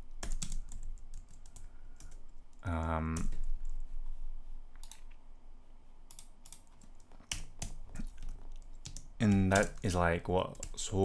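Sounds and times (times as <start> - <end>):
computer keyboard typing: 0.2 - 2.3, 6.1 - 10.8.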